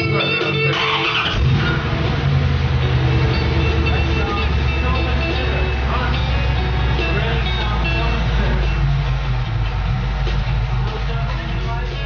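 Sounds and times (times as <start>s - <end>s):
guitar music: 0.0s - 12.0s
car engine starting and running: 0.4s - 12.0s.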